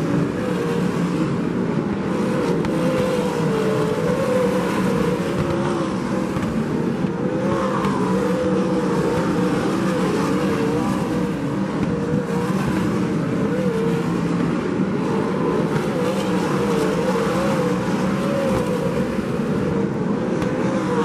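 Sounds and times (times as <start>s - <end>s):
racing car engines din: 0.0s - 21.0s.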